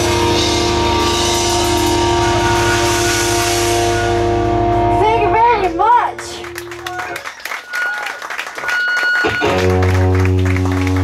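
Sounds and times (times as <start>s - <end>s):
distorted guitar chord through amplifiers: 0.0s - 5.6s.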